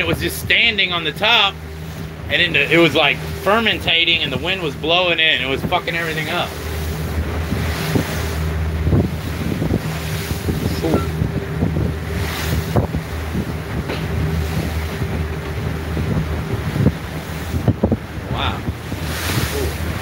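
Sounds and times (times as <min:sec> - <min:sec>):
boat engines running: 0:00.0 - 0:20.0
boat knocking on choppy water: 0:00.0 - 0:20.0
wind buffeting microphone: 0:00.0 - 0:20.0.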